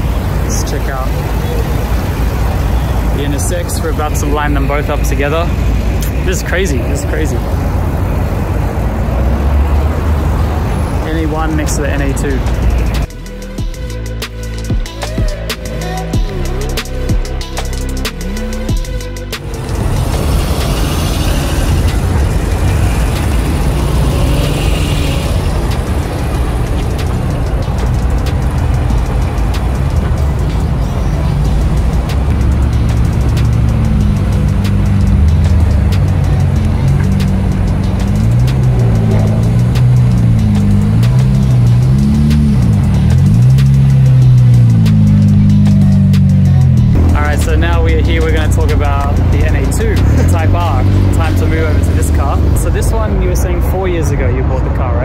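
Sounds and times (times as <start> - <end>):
car engine running at low speed: 19.4 - 52.9.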